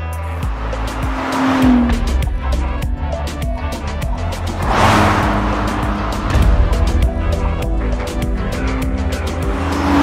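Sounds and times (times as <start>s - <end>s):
music with heavy bass beat: 0.0s - 10.0s
rushing whoosh: 4.4s - 7.7s.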